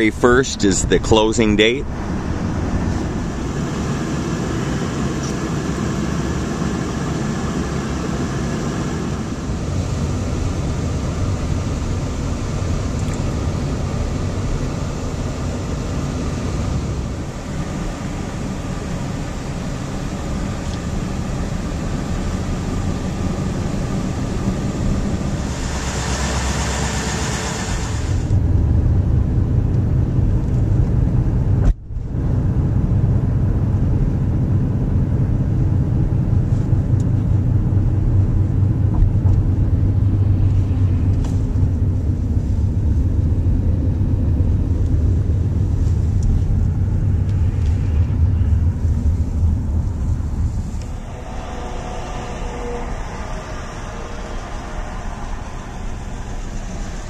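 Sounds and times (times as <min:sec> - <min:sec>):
car engine rumble: 0:00.0 - 0:57.0.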